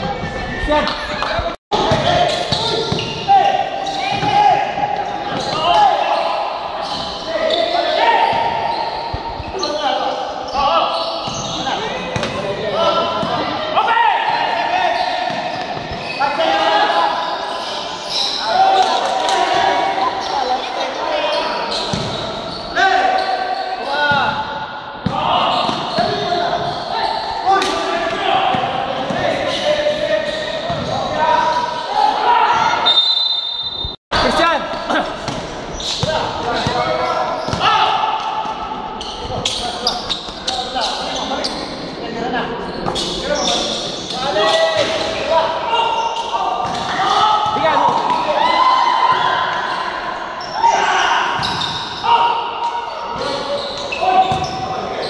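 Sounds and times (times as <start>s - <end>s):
people calling and shouting: 0.0s - 55.0s
basketball bouncing on court: 21.9s - 22.2s.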